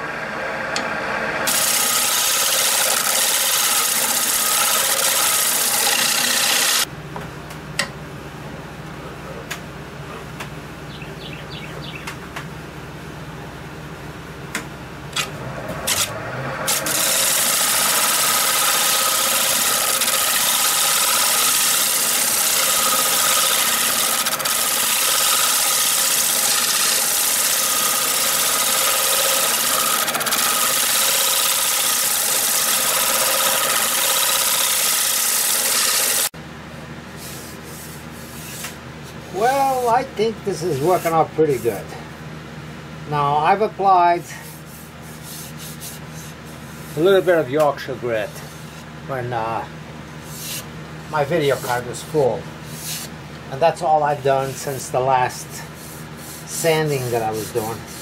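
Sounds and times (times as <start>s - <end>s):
wood lathe spinning: 0.0s - 6.9s, 15.2s - 36.3s, 54.4s - 58.0s
turning tool rasping on wood: 1.5s - 6.9s, 16.7s - 36.3s, 55.6s - 58.0s.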